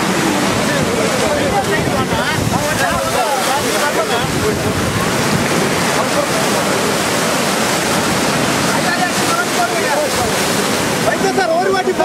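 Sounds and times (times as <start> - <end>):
faint voices: 0.0 - 12.0
sea surf washing ashore: 0.0 - 12.0.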